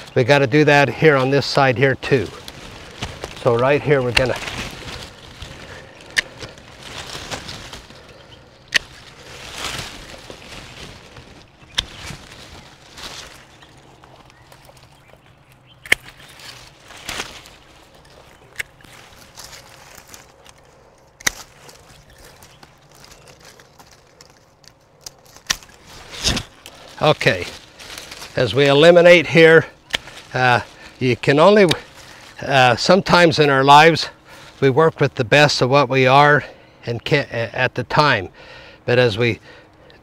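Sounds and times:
pruning shears snipping: 0:00.0 - 0:33.4
leaves and branches rustling: 0:00.0 - 0:40.0.

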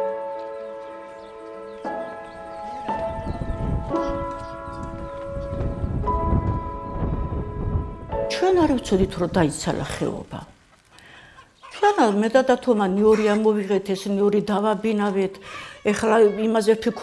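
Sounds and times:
slow piano music: 0:00.0 - 0:09.3.

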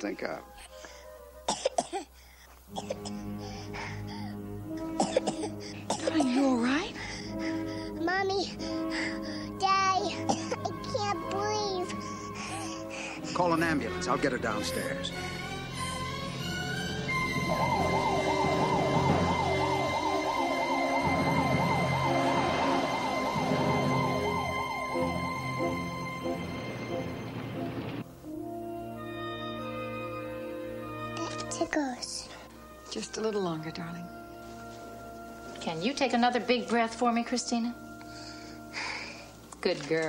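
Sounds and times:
soft music score: 0:00.0 - 0:40.0
little girl coughing: 0:01.5 - 0:02.1, 0:02.7 - 0:03.3, 0:05.0 - 0:06.7, 0:10.1 - 0:10.7
ambulance siren yelping: 0:16.7 - 0:27.2.

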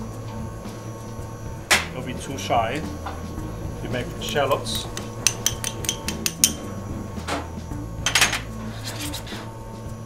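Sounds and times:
metal tapping on saucepan: 0:05.0 - 0:06.6
soft scrape in pan: 0:08.6 - 0:09.5.

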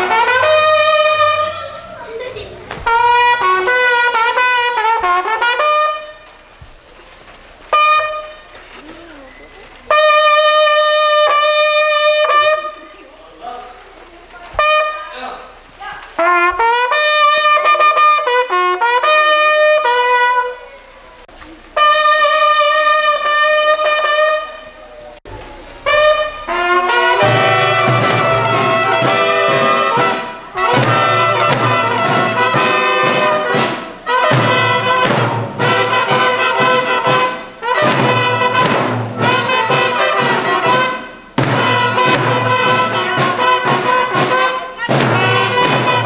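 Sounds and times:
bugles playing a call: 0:00.0 - 0:06.5, 0:07.3 - 0:13.8, 0:14.6 - 0:46.0.

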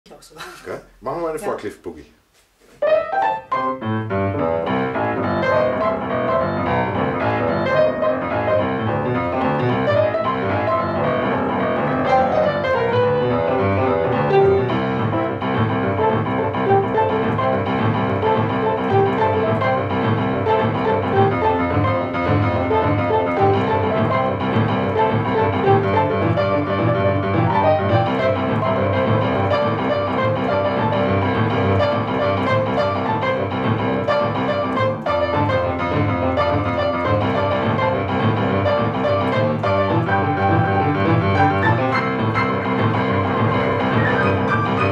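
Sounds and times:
boogie-woogie upright piano: 0:02.8 - 0:44.9.

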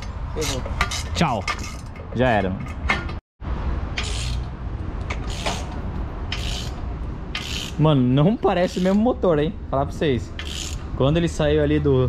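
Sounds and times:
ratchet wrench clicking: 0:04.0 - 0:07.8, 0:10.3 - 0:10.9.

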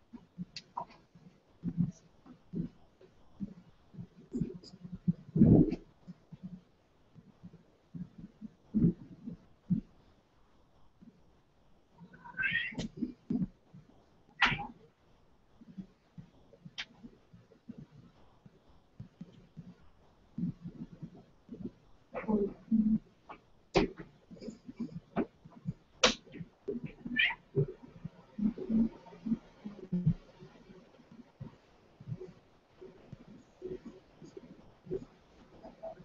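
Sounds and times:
cat low vocalisations: 0:12.0 - 0:13.4, 0:26.7 - 0:30.3
cat meowing: 0:12.1 - 0:12.9, 0:27.1 - 0:27.4.

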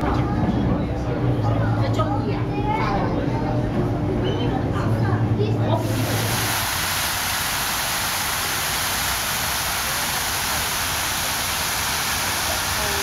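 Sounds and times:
fountain water splashing: 0:05.8 - 0:13.0.

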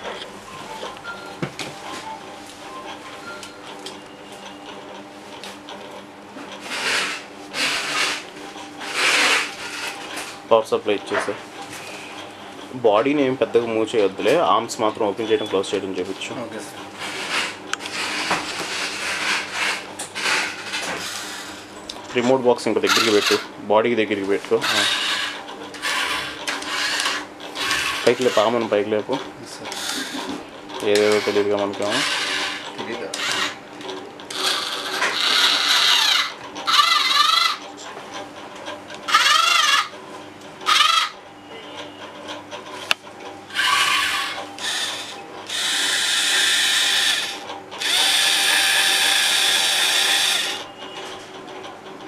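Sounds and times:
small gear motors whirring: 0:06.6 - 0:10.2, 0:16.3 - 0:21.9, 0:22.6 - 0:23.5, 0:24.4 - 0:33.6, 0:34.3 - 0:37.8, 0:39.1 - 0:39.9, 0:40.6 - 0:42.0, 0:43.5 - 0:50.9.

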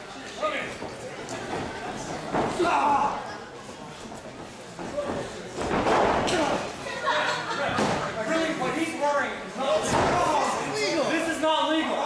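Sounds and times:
voices shouting in a hall: 0:02.3 - 0:03.5.

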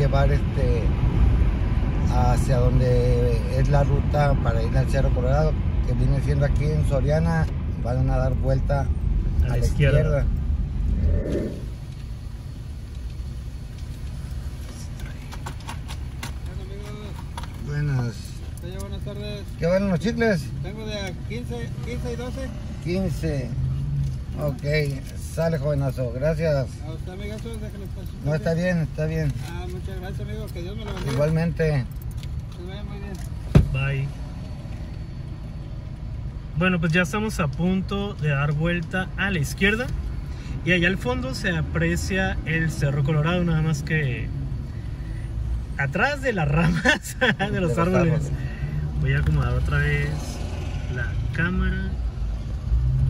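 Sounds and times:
car engine idling: 0:08.0 - 0:34.0, 0:42.0 - 0:51.9.

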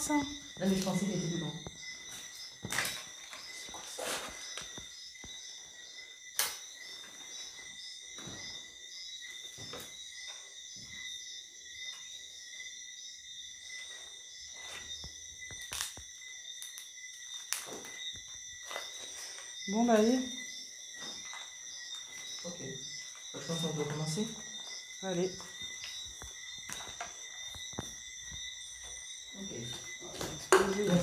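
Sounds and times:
crickets chirping: 0:00.0 - 0:31.0
footsteps on papers and debris: 0:00.6 - 0:05.4, 0:13.8 - 0:20.1, 0:20.9 - 0:31.0.

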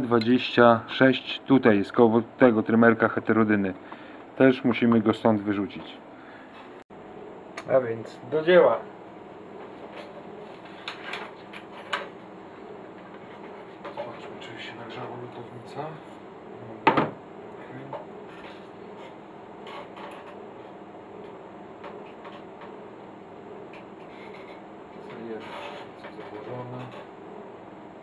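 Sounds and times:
steady low hum: 0:00.0 - 0:28.0.

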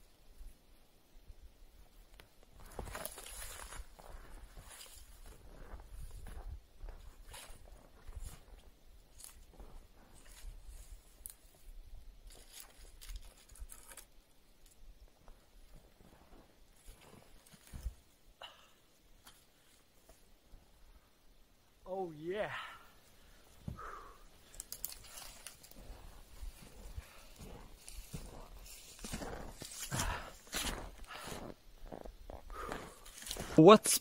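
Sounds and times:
snowshoe steps crunching snow: 0:02.5 - 0:11.1, 0:24.9 - 0:33.6.

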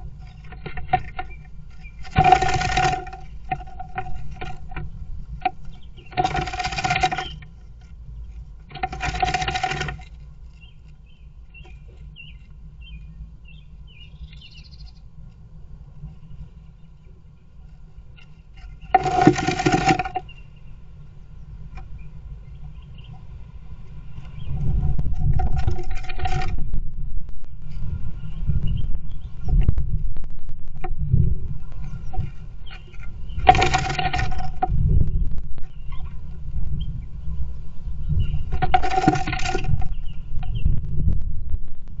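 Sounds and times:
bird claws scratching on wood: 0:00.0 - 0:11.0, 0:17.6 - 0:20.4, 0:24.2 - 0:26.6, 0:31.6 - 0:35.0, 0:38.5 - 0:40.1
knocks and rustles: 0:00.0 - 0:12.6, 0:18.1 - 0:20.4, 0:24.2 - 0:26.8, 0:28.7 - 0:36.9, 0:38.1 - 0:41.3.

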